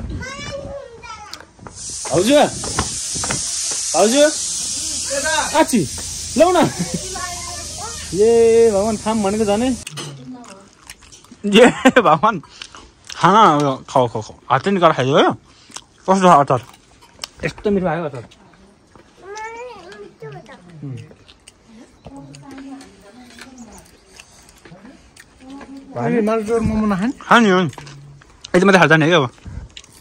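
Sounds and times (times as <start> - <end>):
steady high hiss: 1.6 - 9.9.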